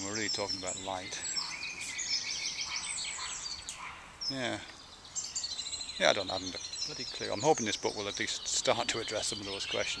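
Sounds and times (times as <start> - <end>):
birds chirping and twittering: 0.0 - 10.0.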